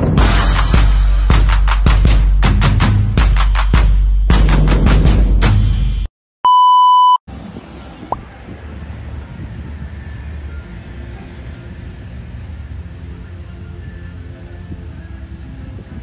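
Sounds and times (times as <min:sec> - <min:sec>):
electronic beep: 0:06.5 - 0:07.2
low traffic rumble: 0:07.3 - 0:16.0.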